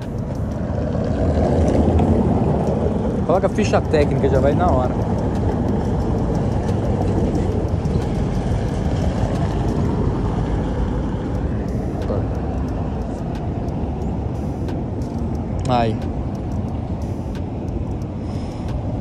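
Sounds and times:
street background rumble: 0:00.0 - 0:19.0.

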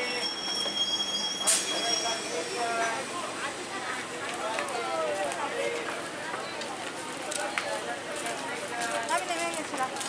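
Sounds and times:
train brakes squealing: 0:00.0 - 0:03.1.

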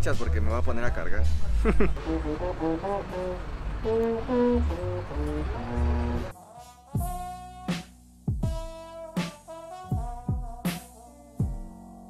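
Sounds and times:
baritone horn playing: 0:01.9 - 0:12.0
backing track with sharp beat: 0:06.1 - 0:11.8.

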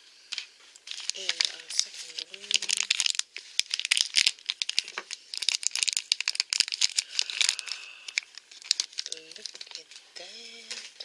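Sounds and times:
plastic wrapper crinkling and tearing: 0:00.3 - 0:11.0.

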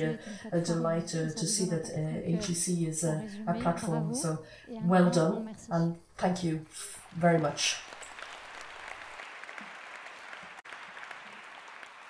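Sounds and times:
audience applauding: 0:06.9 - 0:12.0.

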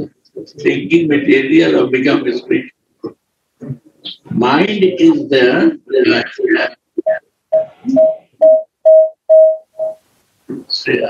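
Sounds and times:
short electronic beeps: 0:07.0 - 0:10.0.

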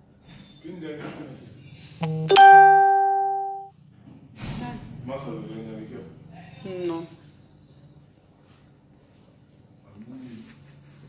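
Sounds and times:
two-note plucked tone: 0:02.0 - 0:03.7.

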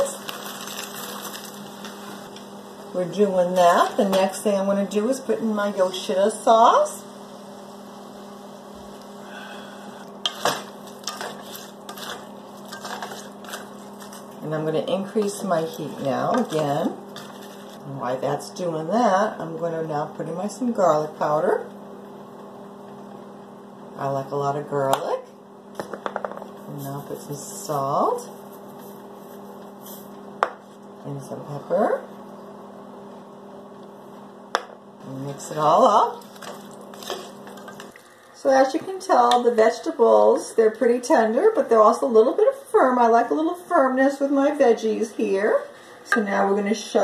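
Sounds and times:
vegetables frying in a pot: 0:00.0 - 0:09.5, 0:10.1 - 0:19.3
steady low hum: 0:00.0 - 0:47.0
wooden spoon scraping a pot: 0:10.2 - 0:14.4, 0:15.1 - 0:17.8, 0:35.3 - 0:38.0.

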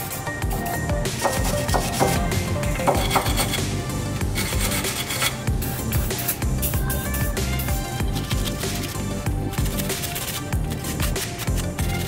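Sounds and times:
background music: 0:00.0 - 0:12.0
wire brush scrubbing metal: 0:01.2 - 0:12.0.

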